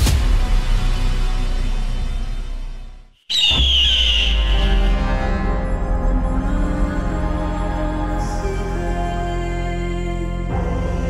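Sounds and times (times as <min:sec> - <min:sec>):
dark film score music: 0:00.0 - 0:11.0
bird of prey screaming: 0:03.3 - 0:04.7
low drone: 0:03.5 - 0:11.0.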